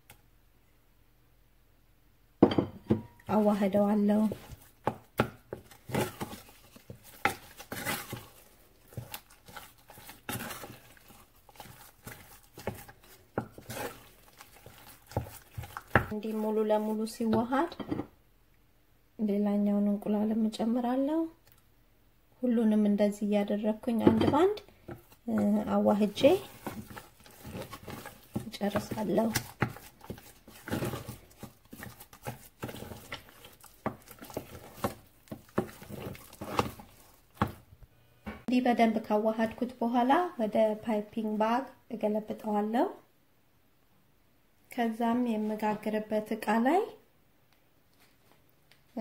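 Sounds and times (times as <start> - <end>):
spatula beating dough in a pan: 3.0 - 17.8, 23.9 - 37.7
wooden spoon knocking a saucepan: 24.0 - 36.8.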